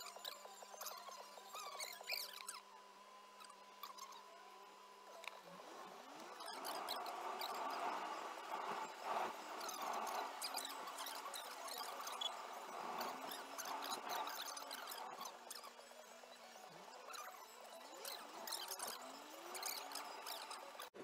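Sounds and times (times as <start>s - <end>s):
high squeaky sped-up chirps: 0.0s - 2.7s, 3.4s - 4.5s, 5.1s - 20.9s.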